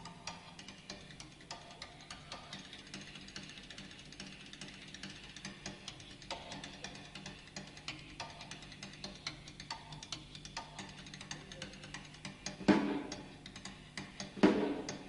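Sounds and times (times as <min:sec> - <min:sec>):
soft drum solo with sticks: 0:10.6 - 0:15.0.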